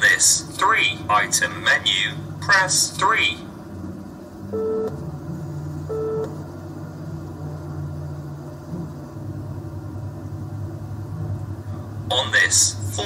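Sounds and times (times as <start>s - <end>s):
car engine and road hum: 0.0s - 13.0s.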